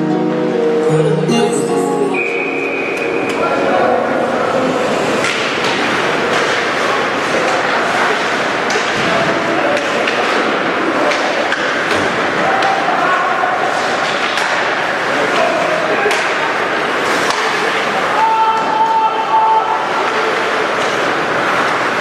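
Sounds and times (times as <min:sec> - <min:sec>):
crowd hubbub in echoing arena: 0:00.0 - 0:22.0
clacks of sticks and puck: 0:05.2 - 0:19.0, 0:19.9 - 0:22.0.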